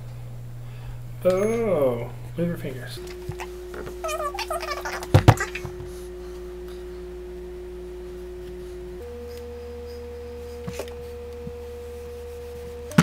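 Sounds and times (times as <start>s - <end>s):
electronic sine tones: 0.0s - 13.0s.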